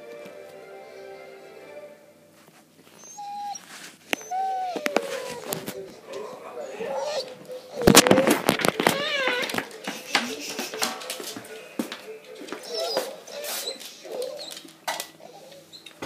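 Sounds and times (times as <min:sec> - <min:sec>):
dog whining: 0:02.9 - 0:09.6, 0:12.5 - 0:16.0
knocks and rustling: 0:07.8 - 0:11.5.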